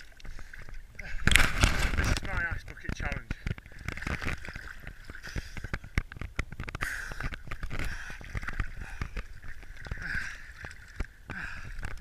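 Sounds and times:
water sloshing and splashing: 0.0 - 12.0
sharp clicks and knocks: 5.4 - 9.7.

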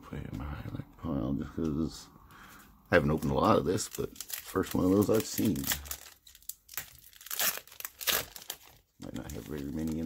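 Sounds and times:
foil wrapper crinkling and tearing: 3.1 - 10.0.

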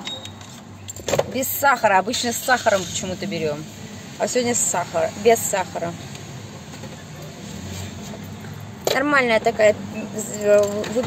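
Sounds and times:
woman speaking: 1.3 - 6.0, 8.9 - 11.0.

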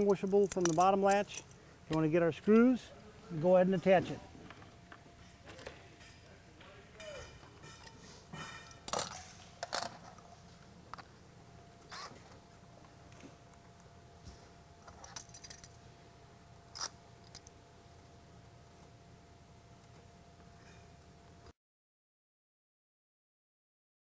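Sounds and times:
metallic clicks and jingling: 0.0 - 2.8, 14.9 - 15.8.

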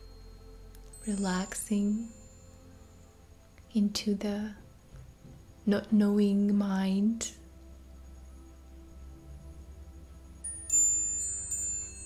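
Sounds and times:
metal wind chimes ringing: 0.0 - 3.1, 10.4 - 12.0
soft background music: 0.0 - 12.0.

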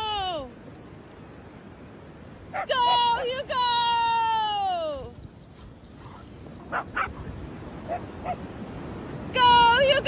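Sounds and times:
dog barking: 6.1 - 7.3, 7.9 - 8.4.

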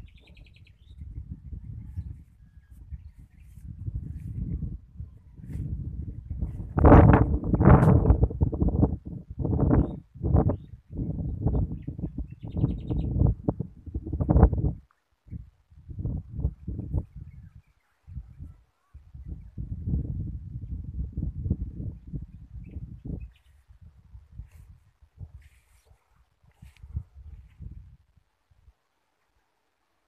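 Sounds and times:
faint high bird chirp: 0.0 - 6.5
wind buffeting microphone: 0.0 - 28.7.

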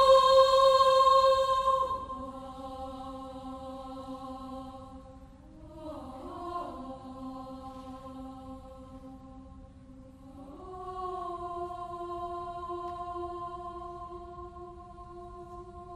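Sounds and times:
choir singing held chords: 0.0 - 15.9.

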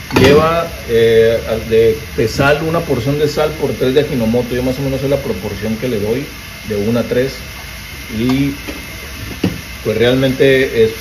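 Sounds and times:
gas burner rushing: 0.0 - 11.0
water boiling in a wok: 0.0 - 11.0.

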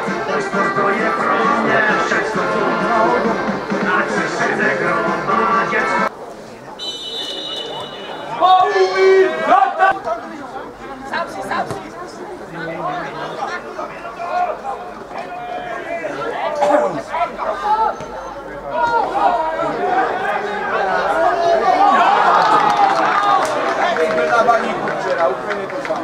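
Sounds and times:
spectators talking and calling out: 0.0 - 26.0.

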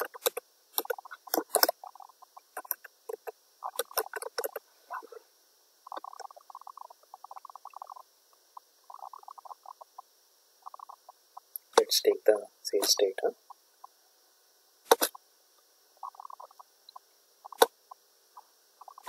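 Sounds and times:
computer keyboard typing: 0.0 - 4.6.

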